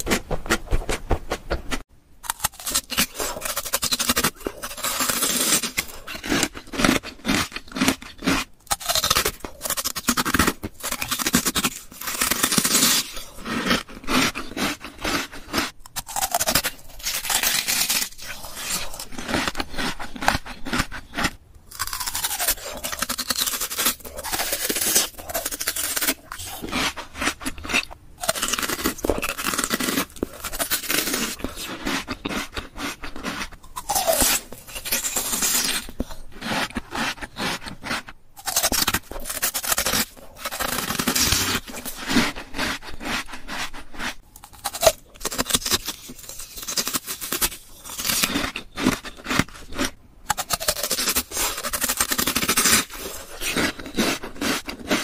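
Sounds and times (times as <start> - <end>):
crunchy bites and chewing: 0.0 - 55.0.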